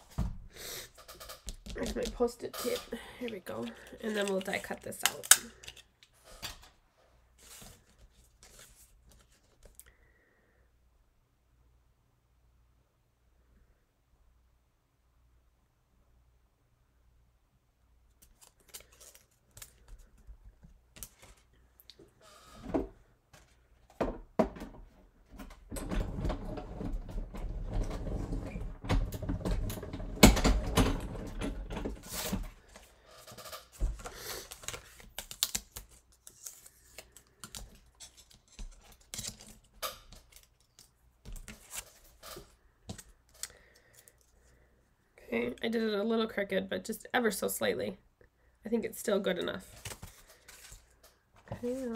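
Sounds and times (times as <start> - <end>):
plates and paper rattling: 1.0 - 5.8.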